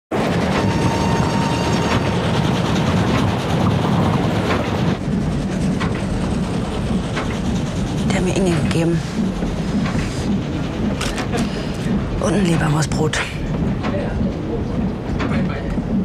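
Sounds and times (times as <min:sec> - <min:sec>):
rushing wind: 0:00.1 - 0:12.6
train rumble: 0:00.1 - 0:16.0.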